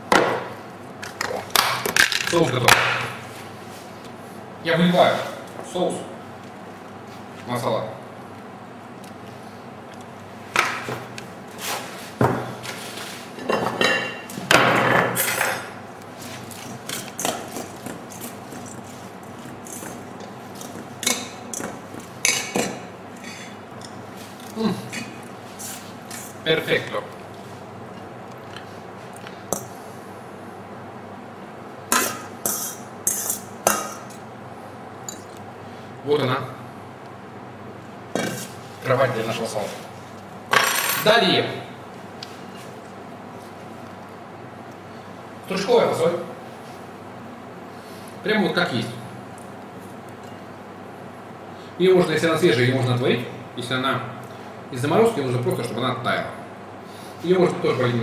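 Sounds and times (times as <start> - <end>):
utensils and dishes clinking: 35.1 - 35.4.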